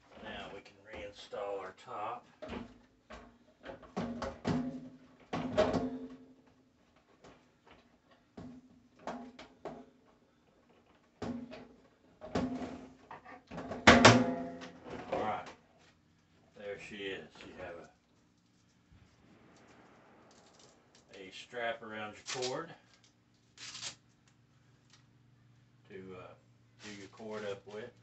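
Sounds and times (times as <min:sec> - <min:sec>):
plastic knocks and clatters: 0:02.4 - 0:06.2.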